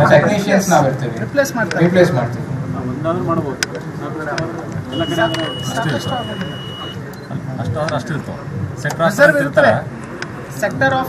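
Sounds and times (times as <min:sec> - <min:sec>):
men talking: 0:00.0 - 0:11.0
high electronic beep: 0:04.9 - 0:07.3.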